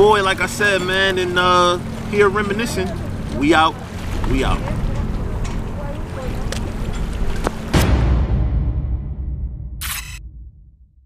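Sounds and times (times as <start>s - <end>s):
wind rumble on microphone: 3.0s - 7.8s
sharp hit with deep boom: 7.7s - 11.0s.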